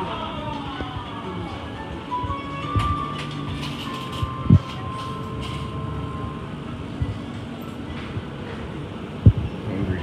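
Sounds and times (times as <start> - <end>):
refrigerated display cases humming: 0.0 - 10.0.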